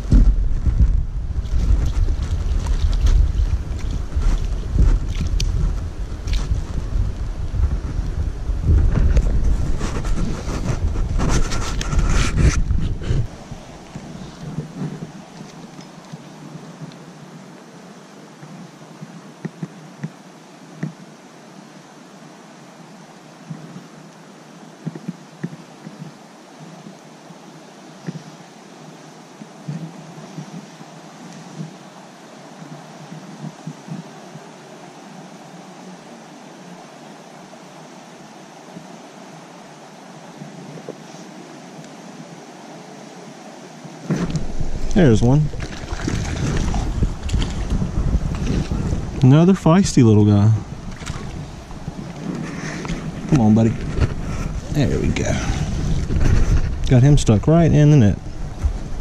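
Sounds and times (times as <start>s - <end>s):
creek water running: 0.0s - 59.0s.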